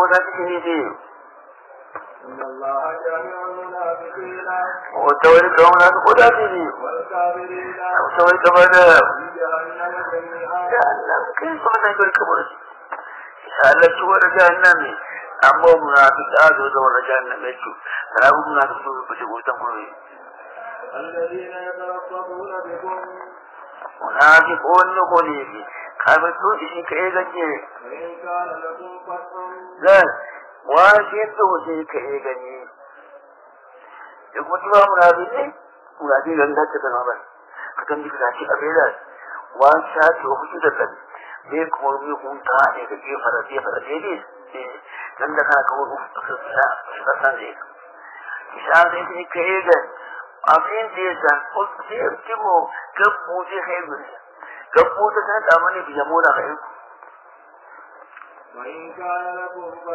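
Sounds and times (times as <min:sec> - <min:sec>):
man speaking: 0:00.0 - 0:01.1, 0:02.0 - 0:33.2, 0:33.9 - 0:56.8, 0:58.2 - 0:59.9.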